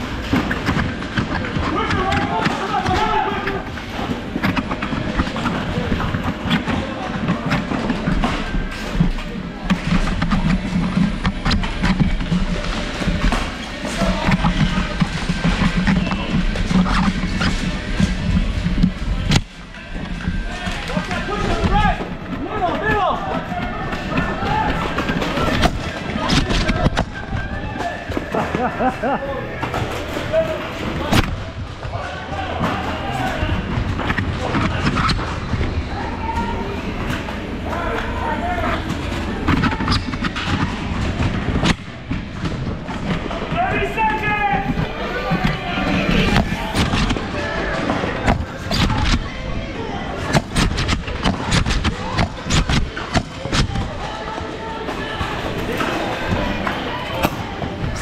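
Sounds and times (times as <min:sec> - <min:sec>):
people shouting: 0:01.6 - 0:04.2, 0:20.4 - 0:29.0, 0:34.4 - 0:37.0
foam dart blasters clicking and firing: 0:50.0 - 0:54.2.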